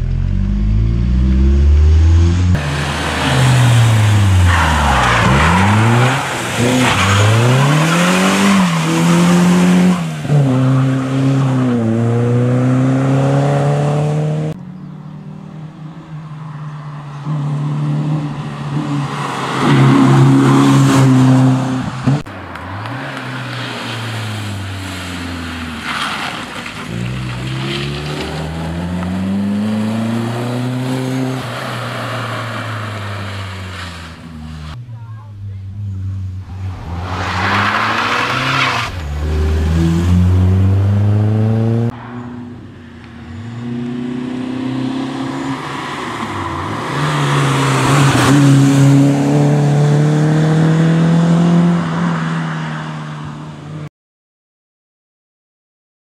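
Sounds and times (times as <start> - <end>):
rally car engine revving past: 0.0 - 14.6, 35.7 - 42.6, 46.6 - 52.8.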